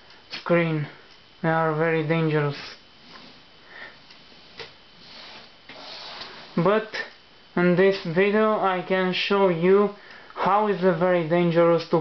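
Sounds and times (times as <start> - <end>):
low room noise: 0.0 - 12.0
soft breath: 3.0 - 4.1, 10.0 - 10.4.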